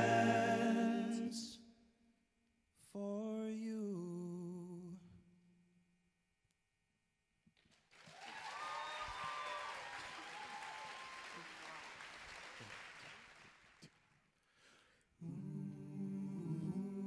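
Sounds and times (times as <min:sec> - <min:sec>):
men's choir humming chord: 0:00.0 - 0:01.5
audience applause and cheering: 0:07.9 - 0:13.9
whoops from crowd: 0:08.1 - 0:11.8.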